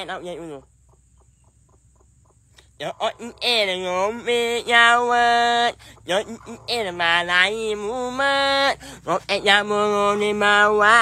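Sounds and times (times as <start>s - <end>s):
man singing wavering ah: 2.8s - 11.0s.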